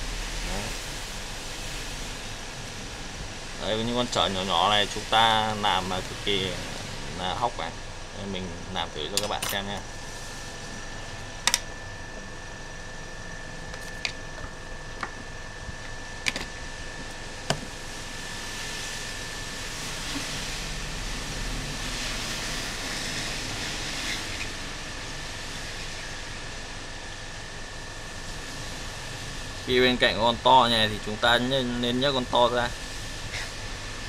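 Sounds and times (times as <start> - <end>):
faint steady whine: 0.0 - 34.0
hot air station hissing: 0.0 - 34.0.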